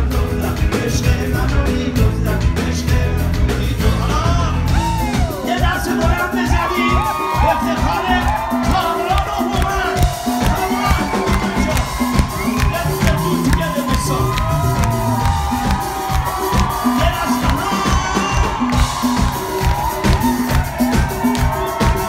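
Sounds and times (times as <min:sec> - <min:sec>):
crowd cheering and singing along: 0:00.0 - 0:22.0
live band playing pop song: 0:00.0 - 0:22.0.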